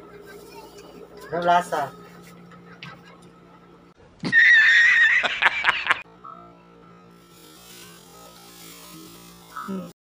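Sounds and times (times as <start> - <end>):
horse whinny sound effect: 4.2 - 5.3.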